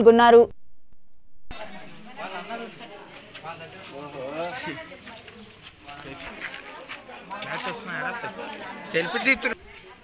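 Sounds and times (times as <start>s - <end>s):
people talking indistinctly: 1.5s - 10.0s.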